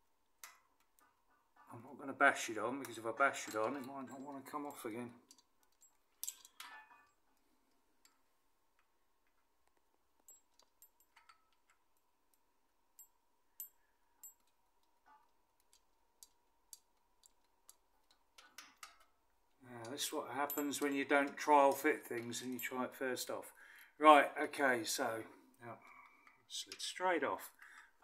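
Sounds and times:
metallic clicks of timing chain: 2.8s - 7.0s, 15.6s - 23.4s.

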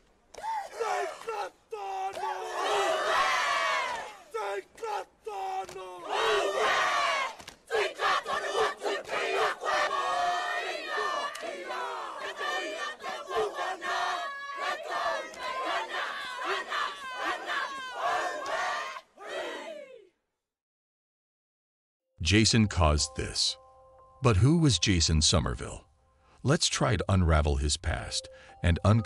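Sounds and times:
group shouting chant in unison: 0.4s - 20.1s.

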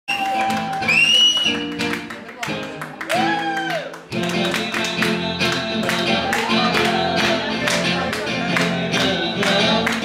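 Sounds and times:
hand claps: 0.2s - 10.0s
live dance music: 0.3s - 10.0s.

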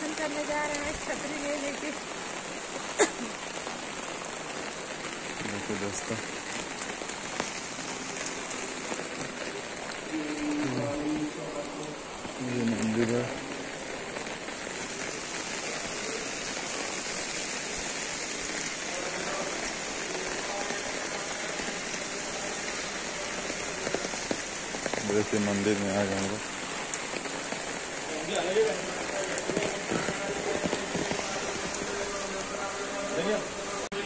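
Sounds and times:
heavy rain on umbrella: 0.0s - 34.0s.

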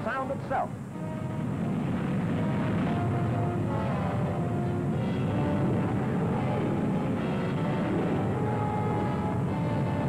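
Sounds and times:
aircraft engine noise: 0.0s - 10.0s
faint music: 0.0s - 10.0s.

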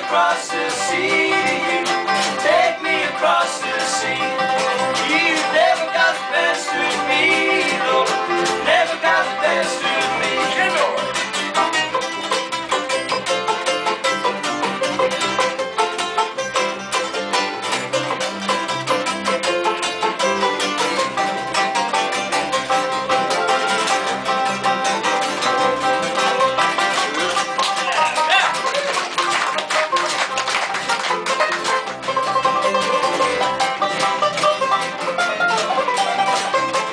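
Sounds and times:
acoustic string band playing: 0.0s - 36.9s.

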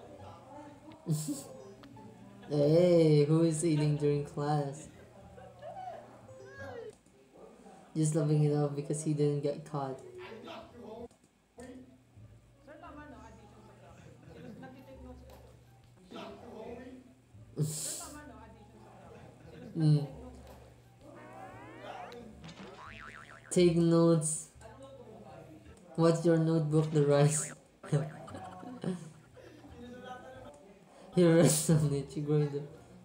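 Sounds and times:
rising whistle-like pitch glide: 21.2s - 22.2s
faint high voice giggling: 27.8s - 29.7s.

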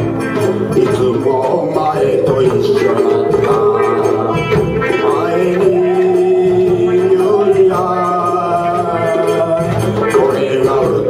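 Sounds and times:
acoustic guitars strumming: 0.0s - 11.0s.

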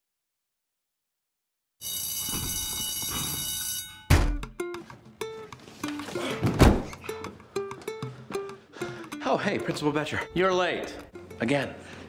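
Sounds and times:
electric bell ringing: 1.8s - 4.4s
loud thump: 4.1s - 4.5s, 6.5s - 7.0s
plucked string music: 4.3s - 12.0s.

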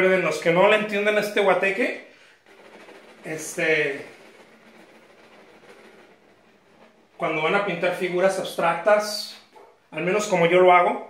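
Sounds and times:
pencil scratching on canvas: 2.4s - 8.1s.

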